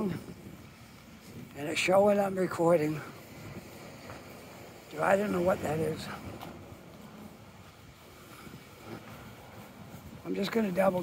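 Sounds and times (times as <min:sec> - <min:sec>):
distant traffic rumble: 0:00.0 - 0:11.0.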